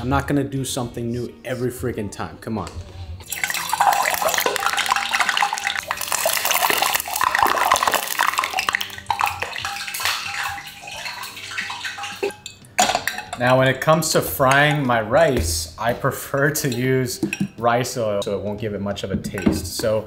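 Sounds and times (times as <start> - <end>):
hot oil spitting and crackling: 3.2 - 13.3.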